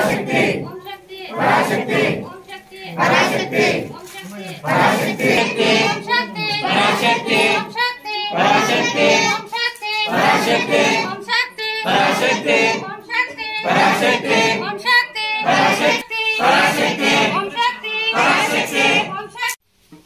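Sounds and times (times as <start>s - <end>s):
group chanting loudly: 0.0s - 19.4s.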